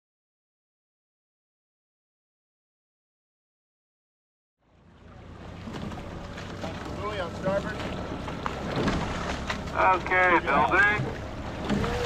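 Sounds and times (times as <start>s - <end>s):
water noise of rowing boat: 4.6s - 12.0s.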